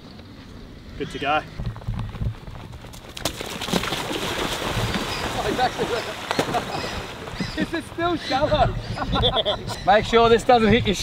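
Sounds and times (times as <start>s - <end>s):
skimboard skimming across water: 2.9s - 8.2s
bare feet splashing through water: 3.0s - 7.7s.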